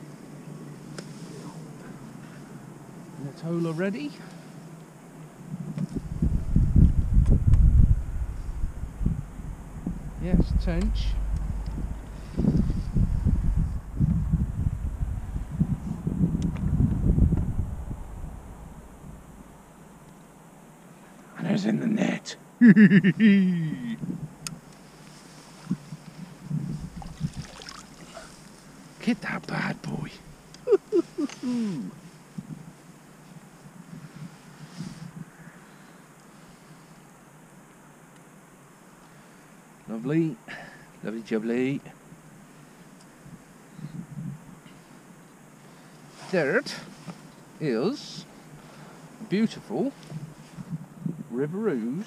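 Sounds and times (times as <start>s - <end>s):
wind buffeting microphone: 5.5s - 20.0s, 25.6s - 28.5s, 50.1s - 51.3s
low bumps and rumbles: 5.8s - 20.0s, 25.7s - 28.6s
man laughing: 22.6s - 24.0s, 30.6s - 31.9s.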